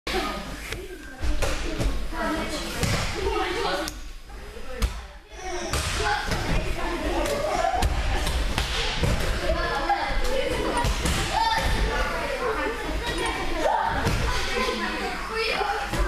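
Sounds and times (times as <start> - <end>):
children's voices chattering: 0.1 - 16.0.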